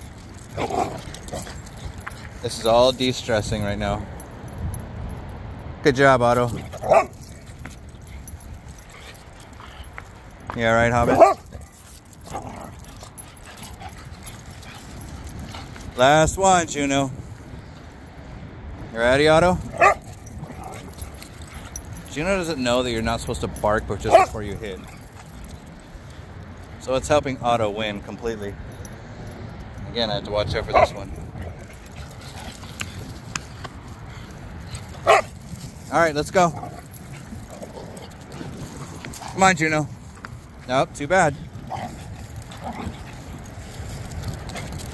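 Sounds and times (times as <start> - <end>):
dogs making faint vocal noises: 0.0 - 4.6, 6.3 - 18.2, 19.6 - 26.8, 30.5 - 44.9
outdoor background noise: 0.0 - 44.9
dog barking: 6.8 - 7.2, 11.0 - 11.4, 19.8 - 20.7, 24.1 - 24.4, 35.0 - 35.3
steady low rumble: 28.1 - 44.9.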